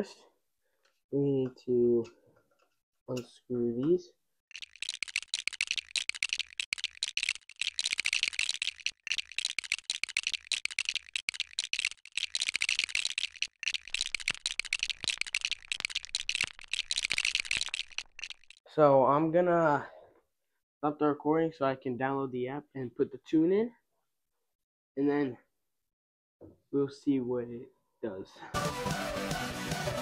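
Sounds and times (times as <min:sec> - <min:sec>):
screwdriver clicking and rattling: 0:04.5 - 0:18.6.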